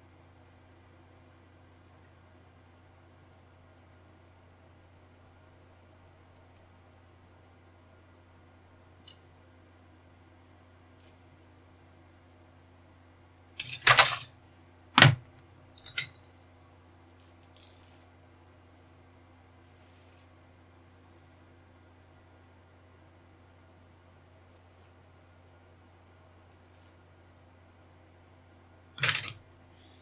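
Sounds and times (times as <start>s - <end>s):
plastic parts clattering knocks: 13.6s - 14.3s, 15.0s - 16.4s, 29.0s - 29.4s
plastic rattles: 13.6s - 14.3s.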